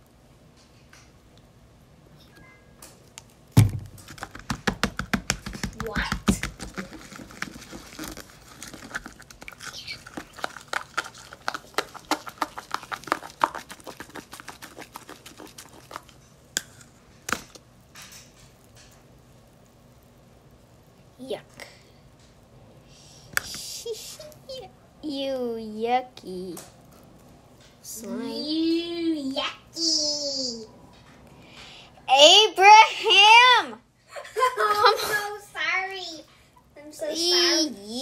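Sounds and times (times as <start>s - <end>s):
sharp knock: 3.6s - 6.5s
spoon stirring sticky slime: 4.0s - 17.6s.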